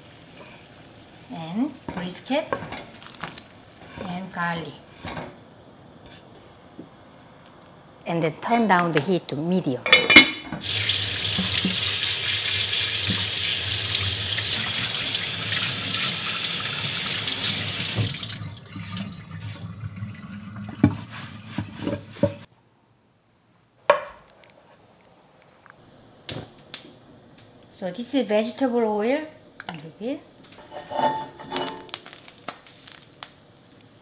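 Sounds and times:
tap water splashing in sink: 0:10.6 - 0:12.0, 0:13.0 - 0:16.1, 0:17.0 - 0:21.0.

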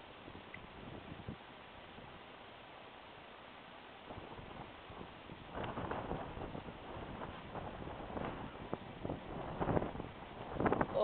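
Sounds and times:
wind gusting across microphone: 0:00.0 - 0:02.2, 0:04.0 - 0:11.0.

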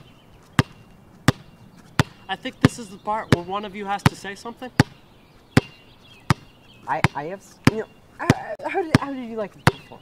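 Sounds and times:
basketball bouncing on hard surface: 0:00.6 - 0:09.9.

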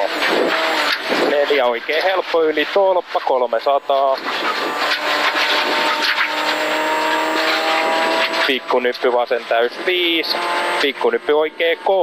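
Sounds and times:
gravel noise from tyres: 0:00.0 - 0:12.0
rally car engine at high revs: 0:00.0 - 0:12.0.

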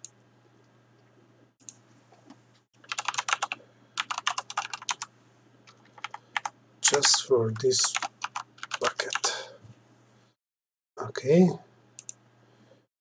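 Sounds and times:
typing on computer keyboard: 0:02.8 - 0:05.1, 0:05.7 - 0:09.3.

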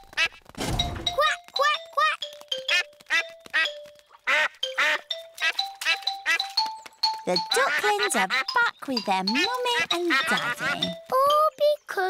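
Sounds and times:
light background tune: 0:00.0 - 0:12.0
cartoon ducklings quacking: 0:01.0 - 0:12.0.

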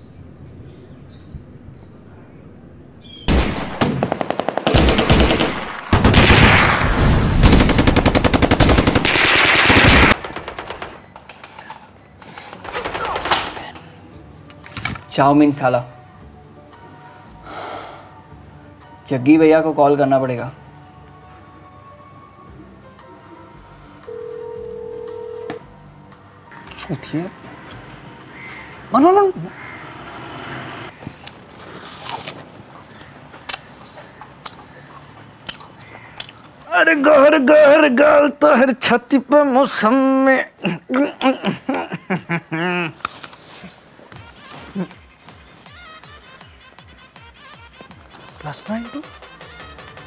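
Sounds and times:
automatic gunfire bursts: 0:03.3 - 0:11.0, 0:12.6 - 0:13.7
phone call tone beep: 0:24.1 - 0:25.6.

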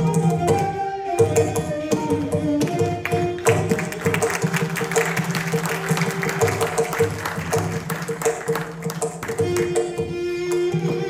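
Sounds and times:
hand drum steady rhythm: 0:02.3 - 0:10.9
audience applause: 0:03.3 - 0:09.9.

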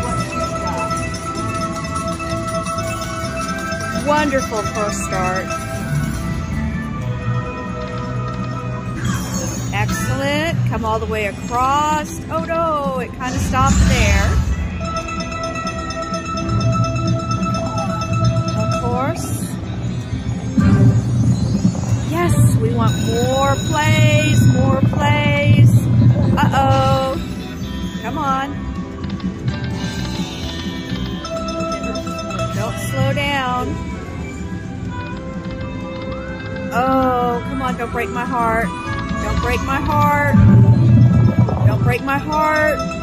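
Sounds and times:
casino babble: 0:00.0 - 0:06.2
slot machine electronic tones: 0:00.0 - 0:43.0.

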